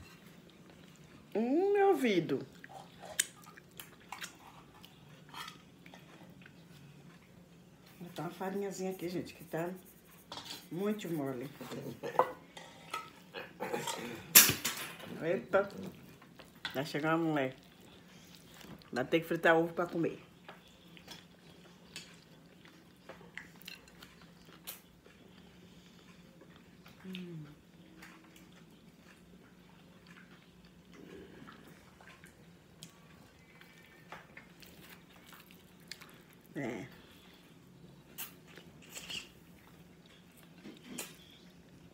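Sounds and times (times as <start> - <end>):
chewing: 0.0 - 1.4, 2.4 - 9.1, 9.9 - 18.9, 20.2 - 41.9
low steady hum: 0.0 - 41.9.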